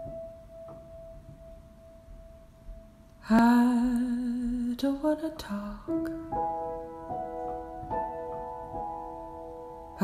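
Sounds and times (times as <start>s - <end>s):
soft piano notes: 0.0s - 10.0s.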